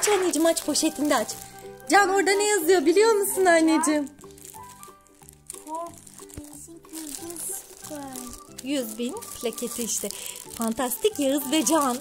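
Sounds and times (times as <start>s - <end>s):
background music with held notes: 0.0s - 12.0s
plastic bag crinkling: 0.0s - 12.0s.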